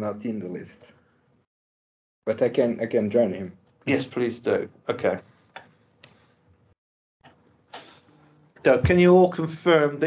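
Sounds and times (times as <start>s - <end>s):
man speaking: 0.0s - 0.9s, 2.3s - 5.2s, 8.6s - 10.0s
faint computer mouse clicks: 5.5s - 6.2s.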